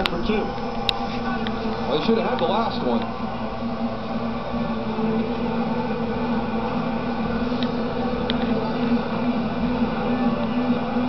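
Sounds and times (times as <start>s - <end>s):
football game on television: 0.0s - 11.0s
steady buzzing hum: 0.0s - 11.0s.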